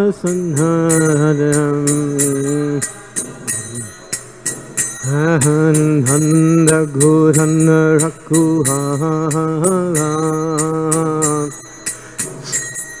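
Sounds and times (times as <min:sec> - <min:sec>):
man singing a devotional chant: 0:00.0 - 0:04.0, 0:05.0 - 0:11.6
small hand cymbals struck: 0:00.0 - 0:13.0.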